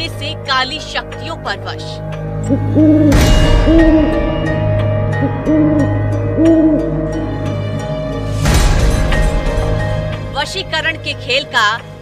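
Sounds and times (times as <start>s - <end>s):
eerie music drone: 0.2s - 10.3s
owl hooting: 2.5s - 4.2s, 5.2s - 7.0s.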